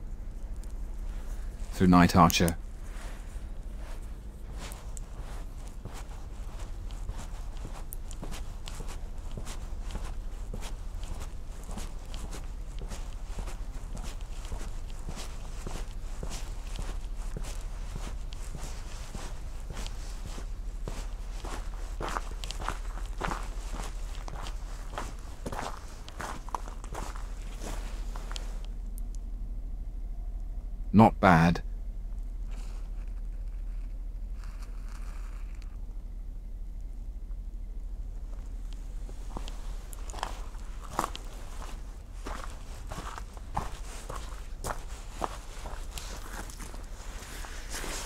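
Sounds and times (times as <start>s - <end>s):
footsteps on gravel: 2.9s - 28.6s, 38.2s - 48.0s.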